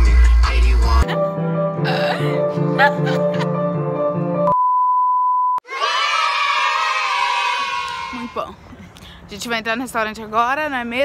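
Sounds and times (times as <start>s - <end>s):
children shouting and cheering: 5.6s - 8.4s.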